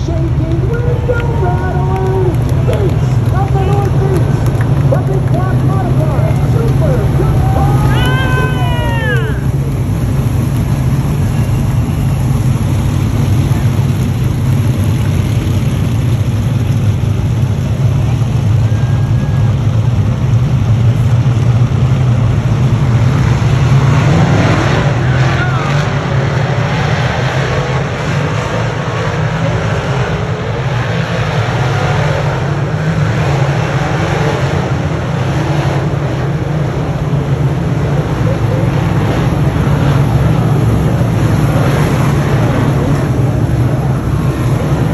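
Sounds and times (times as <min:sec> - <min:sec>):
race car engines droning: 0:00.0 - 0:44.9.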